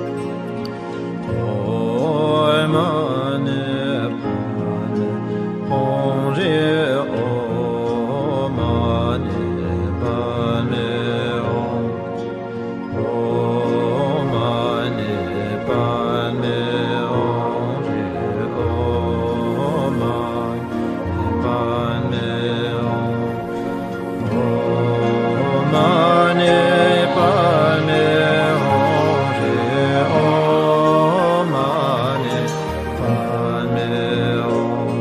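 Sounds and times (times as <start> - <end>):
steady held drone: 0.0 - 35.0
voices chanting low notes: 0.0 - 35.0
person singing a mantra: 1.3 - 12.3, 12.9 - 35.0.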